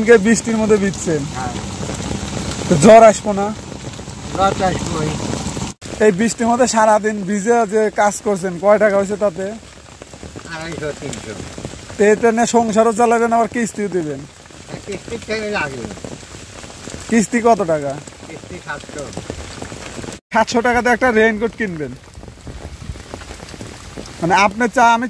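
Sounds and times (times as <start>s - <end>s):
people talking: 0.0s - 1.7s, 2.7s - 3.6s, 4.3s - 5.2s, 6.0s - 9.6s, 10.5s - 11.4s, 12.0s - 16.0s, 17.1s - 19.2s, 20.4s - 22.0s, 24.2s - 25.0s
steady rain falling: 0.0s - 25.0s.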